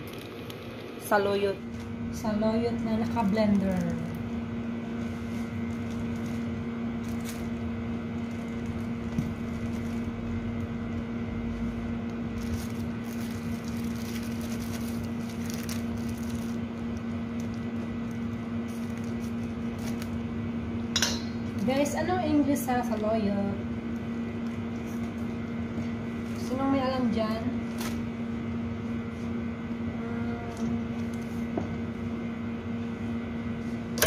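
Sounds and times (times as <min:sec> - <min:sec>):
appliance electrical hum: 0:00.0 - 0:34.0
plastic bag crinkling: 0:02.8 - 0:04.3, 0:04.9 - 0:10.4, 0:12.1 - 0:20.2.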